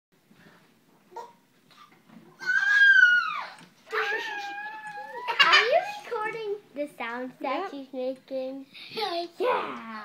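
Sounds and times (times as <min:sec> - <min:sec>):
toddler squealing: 0:02.4 - 0:05.5.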